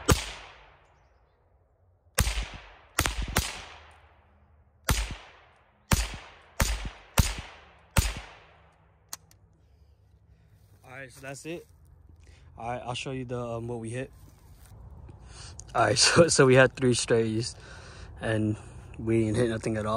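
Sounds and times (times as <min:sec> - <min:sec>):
rifle shots echoing: 0:00.0 - 0:00.9, 0:02.2 - 0:08.8.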